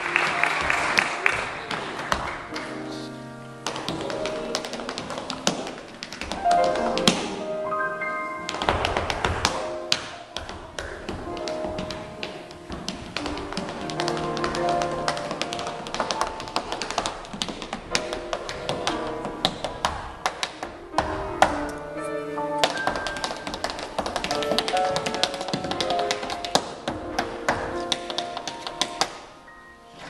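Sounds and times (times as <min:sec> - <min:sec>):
tap shoes on wooden stage: 0:00.0 - 0:03.0, 0:03.6 - 0:07.4, 0:08.4 - 0:21.9, 0:22.6 - 0:29.3.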